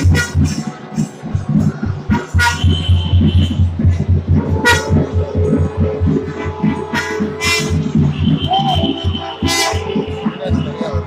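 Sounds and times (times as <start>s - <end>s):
drums beating steady rhythm: 0.0s - 11.0s.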